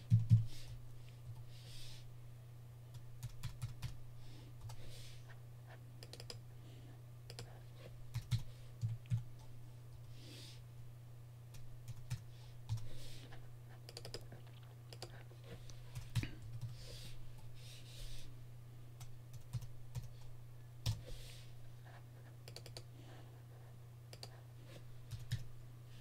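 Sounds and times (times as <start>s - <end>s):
steady low hum: 0.0s - 26.0s
keyboard typing and clicking: 0.1s - 0.5s, 2.9s - 4.0s, 6.0s - 6.4s, 7.3s - 7.5s, 8.1s - 9.5s, 11.5s - 12.9s, 13.8s - 15.2s, 19.0s - 20.2s, 20.8s - 21.1s, 22.4s - 22.9s, 24.1s - 24.4s, 25.1s - 25.5s.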